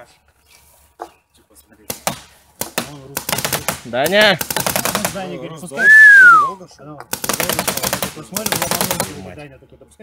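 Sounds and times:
paintball markers firing: 0:01.9 - 0:05.3, 0:07.0 - 0:09.3.

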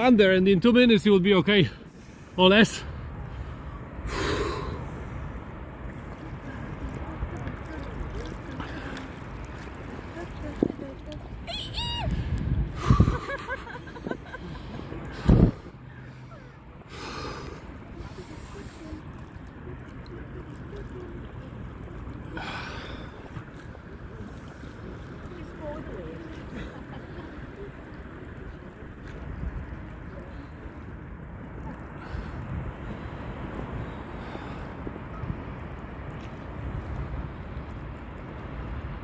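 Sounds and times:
wind: 0:00.0 - 0:39.0
swimmers gasping and breathing: 0:01.7 - 0:06.8, 0:08.4 - 0:10.6, 0:12.1 - 0:19.8, 0:22.2 - 0:25.3
water sloshing: 0:01.8 - 0:38.8.

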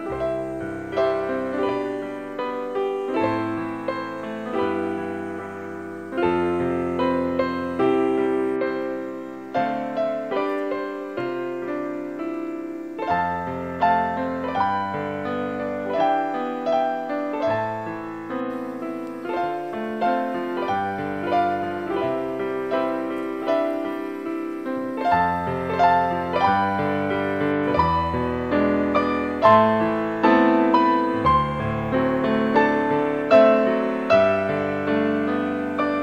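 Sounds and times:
gentle piano music: 0:00.0 - 0:36.0.

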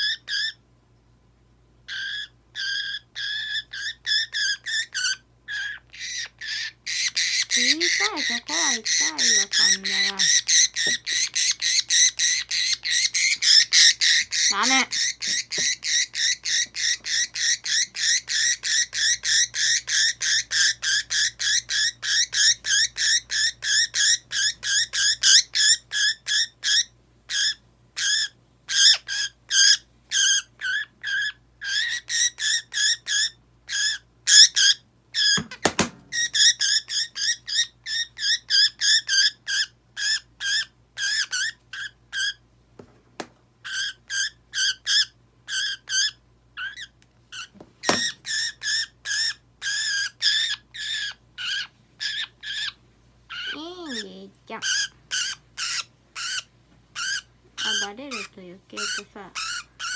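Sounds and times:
budgerigar screeching: 0:00.0 - 0:00.6, 0:01.9 - 0:35.5, 0:36.1 - 0:42.4, 0:43.6 - 0:59.9.

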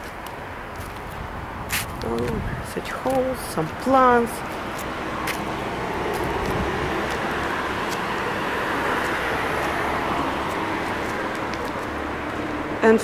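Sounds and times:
hiss of passing cars: 0:00.4 - 0:13.0.

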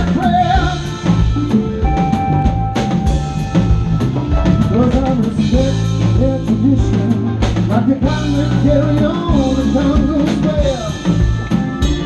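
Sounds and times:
bass guitar: 0:00.0 - 0:12.0
drum kit: 0:00.0 - 0:12.0
electric guitar: 0:00.0 - 0:12.0
swooping lead line: 0:00.0 - 0:12.0.

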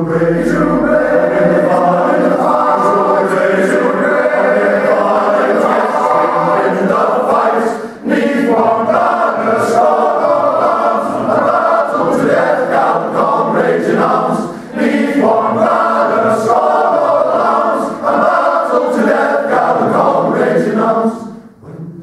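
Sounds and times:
male voice choir singing: 0:00.0 - 0:21.8.

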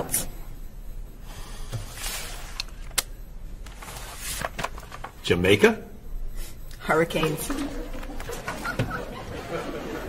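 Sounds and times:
papers rustling: 0:03.6 - 0:05.2.

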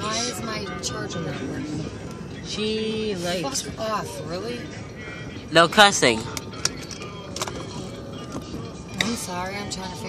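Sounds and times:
road and engine noise inside car: 0:00.0 - 0:10.0.

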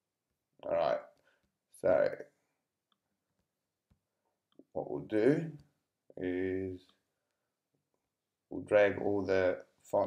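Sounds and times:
man speaking: 0:00.6 - 0:02.4, 0:04.6 - 0:07.0, 0:08.5 - 0:10.0.

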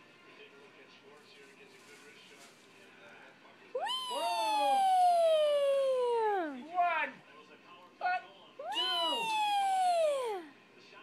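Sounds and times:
dog whining howl: 0:03.8 - 0:06.6, 0:08.6 - 0:10.5.

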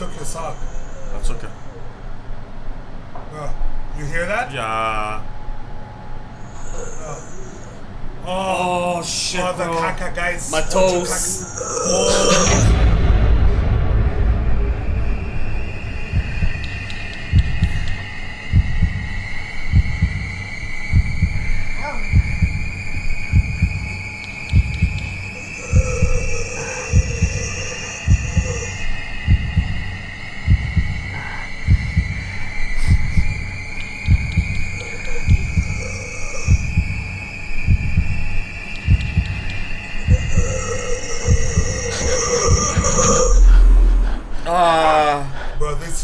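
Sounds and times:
loud low boom: 0:12.2 - 0:17.8, 0:41.3 - 0:44.6
heartbeat thumps: 0:12.3 - 0:44.4.

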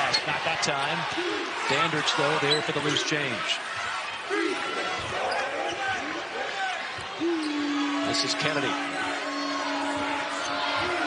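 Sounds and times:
crowd noise: 0:00.0 - 0:11.0
steady low held tone: 0:07.2 - 0:11.0.

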